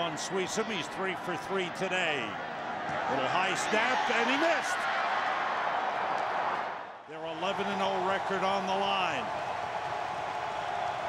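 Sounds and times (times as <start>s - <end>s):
stadium crowd din: 0.0s - 11.0s.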